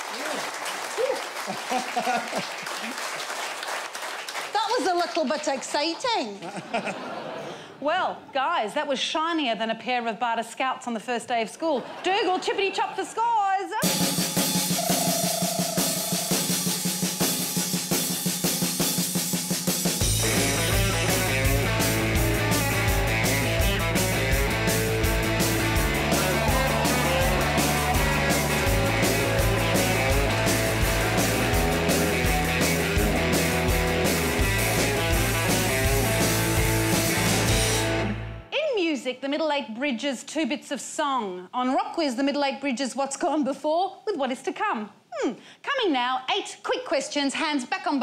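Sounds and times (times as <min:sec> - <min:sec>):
drums: 0:13.8 - 0:38.5
bass guitar: 0:19.9 - 0:38.5
electric guitar: 0:20.0 - 0:38.5.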